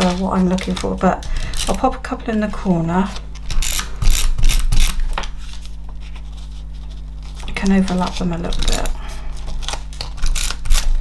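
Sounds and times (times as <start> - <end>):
tape runner on paper: 3.1 - 11.0.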